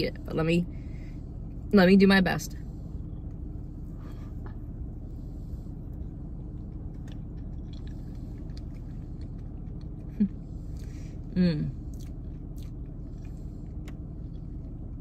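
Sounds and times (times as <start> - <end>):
low hum inside a car: 0.0 - 15.0
faint chewing: 5.5 - 15.0
person humming mm: 11.3 - 11.8.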